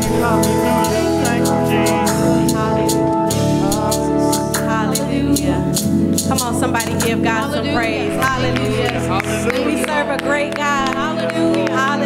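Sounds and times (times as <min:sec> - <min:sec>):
held instrumental chords: 0:00.0 - 0:12.0
steady drum beat: 0:00.0 - 0:12.0
voices singing gospel: 0:00.0 - 0:12.0.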